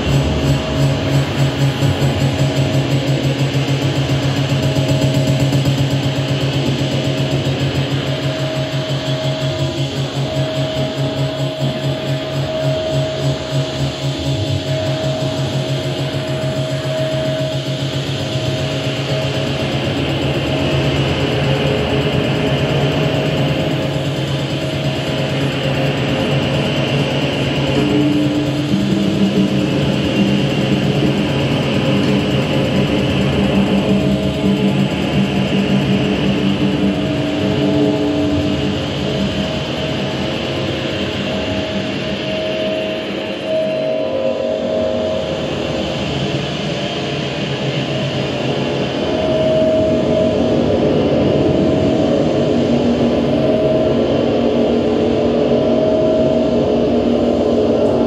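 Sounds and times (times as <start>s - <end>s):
fast low pulsing: 0.0s - 55.3s
sustained synthesizer drones: 0.0s - 58.0s
high held synth tone: 25.4s - 46.5s.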